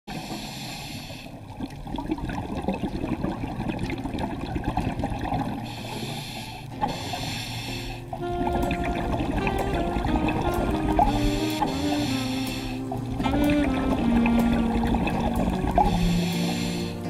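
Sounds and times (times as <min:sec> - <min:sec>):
scuba regulator inhale: 0:00.1 - 0:01.4, 0:05.6 - 0:08.2, 0:11.0 - 0:12.9, 0:15.8 - 0:17.0
exhaled bubbles crackling: 0:01.3 - 0:17.0.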